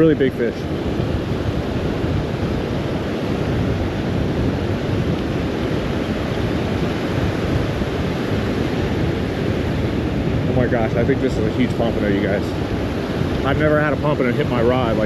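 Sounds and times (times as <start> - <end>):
surf breaking on beach: 0.0 - 15.0
wind rumbling on microphone: 0.0 - 15.0.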